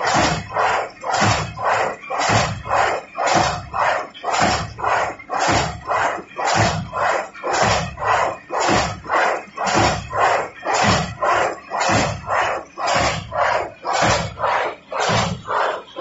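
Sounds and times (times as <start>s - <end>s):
machine rhythmic noisy beat: 0.0s - 16.0s.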